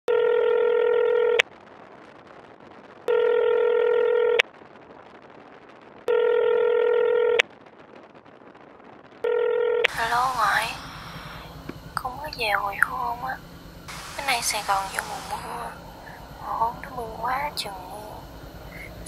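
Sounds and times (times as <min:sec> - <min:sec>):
telephone ringback tone: 0:00.1 - 0:01.4, 0:03.1 - 0:04.4, 0:06.1 - 0:07.4, 0:09.3 - 0:10.5.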